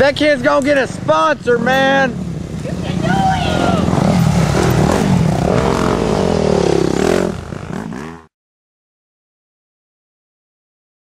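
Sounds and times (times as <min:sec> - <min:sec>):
dirt bike engines revving past: 0:00.0 - 0:08.3.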